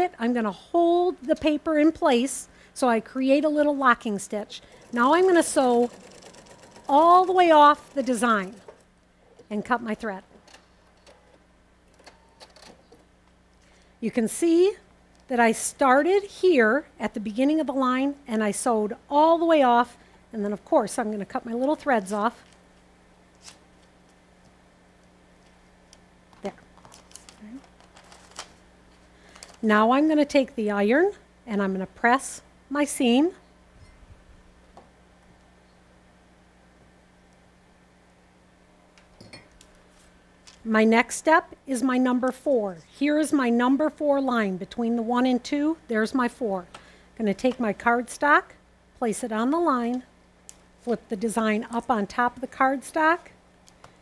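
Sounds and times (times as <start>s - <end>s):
steady low hum: 0.0s - 54.0s
paper rustling and clicking: 26.8s - 28.6s.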